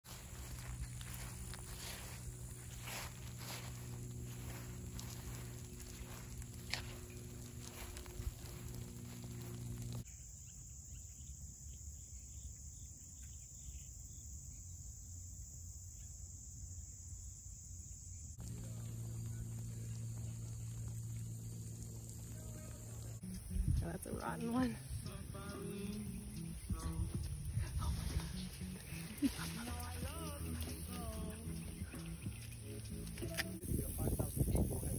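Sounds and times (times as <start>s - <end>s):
soft rustles: 0.1s - 10.0s
steady low hum: 0.1s - 10.0s, 18.4s - 34.2s
music with stepping bass line: 23.2s - 33.6s.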